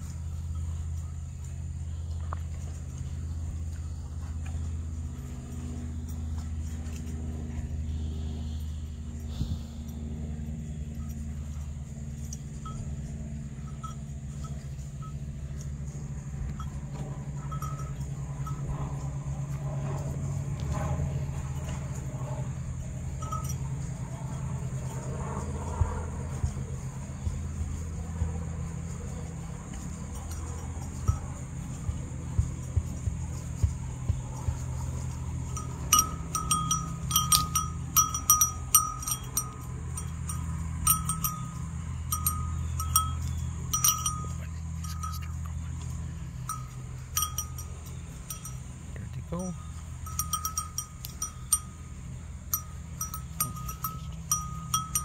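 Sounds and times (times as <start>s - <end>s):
small livestock bell clinking: 0.0s - 55.0s
steady low hum: 0.0s - 55.0s.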